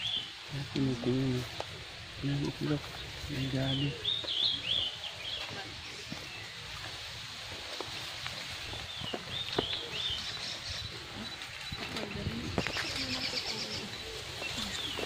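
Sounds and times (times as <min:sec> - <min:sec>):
outdoor background noise: 0:00.0 - 0:15.0
small bird chirping: 0:02.2 - 0:06.8, 0:08.6 - 0:15.0.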